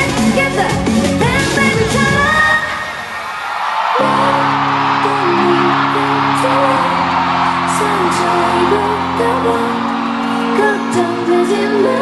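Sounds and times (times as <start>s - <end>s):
live pop music over pa: 0.0s - 12.0s
audience cheering: 1.9s - 12.0s.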